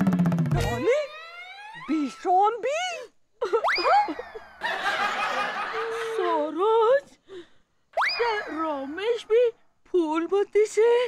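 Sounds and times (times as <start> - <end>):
whistle-like boing: 0.2 - 1.9, 3.6 - 4.2, 8.0 - 8.6
canned laughter: 3.4 - 6.4.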